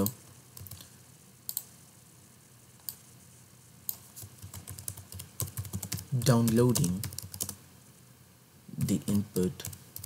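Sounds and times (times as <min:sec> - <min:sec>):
computer keyboard typing: 0:00.0 - 0:00.8, 0:03.9 - 0:07.6.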